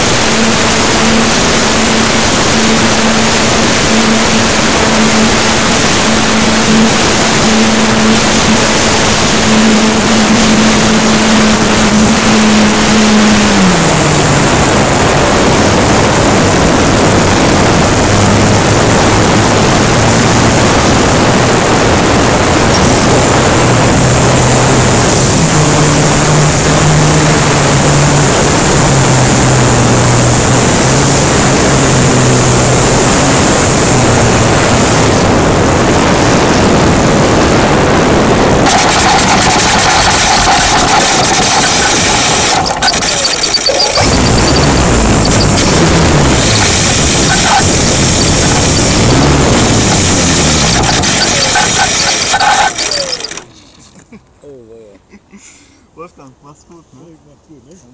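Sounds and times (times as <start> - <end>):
loud wind rush: 0.0 - 53.2
falling motor whine: 0.0 - 53.5
propeller humming: 0.0 - 53.8
wheels rumbling on tarmac: 0.0 - 54.9.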